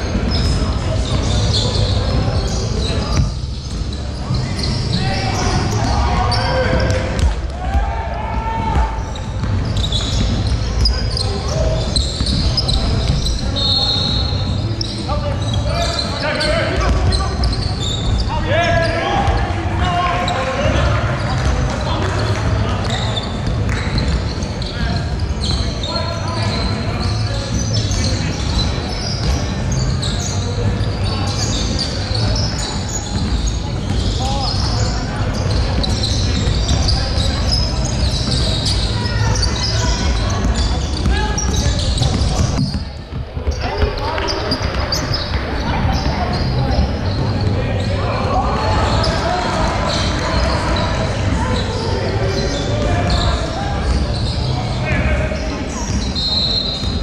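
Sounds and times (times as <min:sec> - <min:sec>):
players calling out: 0:00.0 - 0:57.0
high squeaks: 0:00.1 - 0:07.1, 0:09.0 - 0:19.5
ball bouncing: 0:06.7 - 0:07.9, 0:08.6 - 0:11.0.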